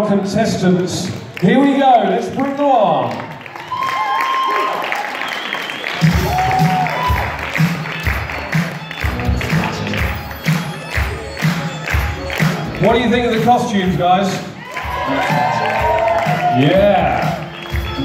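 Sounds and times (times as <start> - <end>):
crowd applauding and cheering: 0.6 - 18.0
dance music with steady beat: 6.0 - 18.0.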